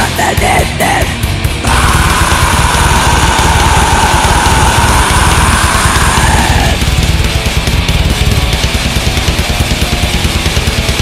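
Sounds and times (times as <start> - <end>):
distorted metal guitars: 0.0 - 11.0
fast drumming: 0.0 - 11.0.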